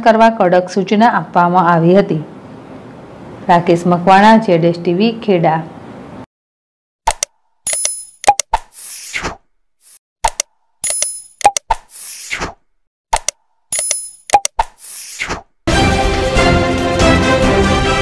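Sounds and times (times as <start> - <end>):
sharp clicks and pops: 7.0 - 9.0, 9.9 - 15.5.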